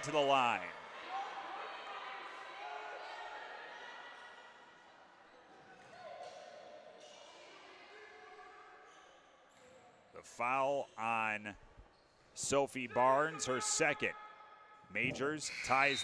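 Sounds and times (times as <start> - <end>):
faint voices: 14.9 - 16.0.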